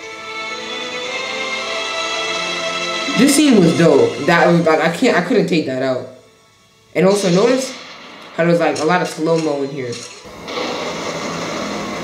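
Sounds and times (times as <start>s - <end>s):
steady rushing noise: 7.0s - 12.0s.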